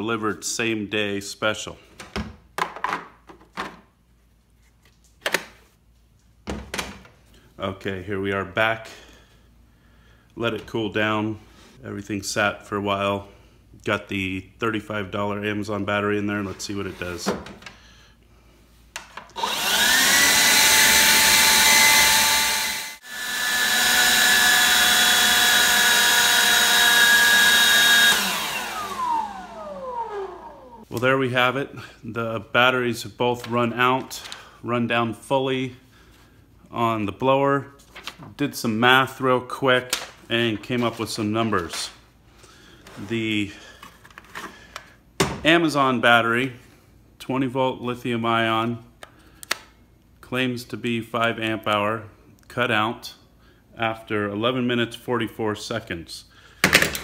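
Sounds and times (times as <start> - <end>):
leaf blower whining: 19.4 - 30.9.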